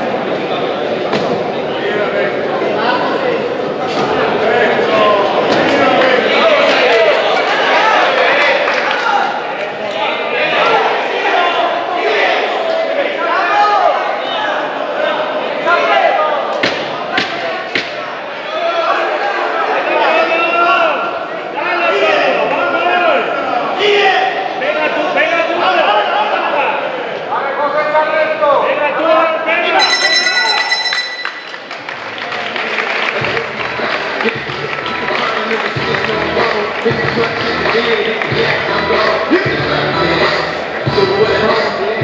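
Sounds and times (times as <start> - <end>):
crowd shouting: 4.2 - 27.1
ring bell ringing: 29.8 - 31.9.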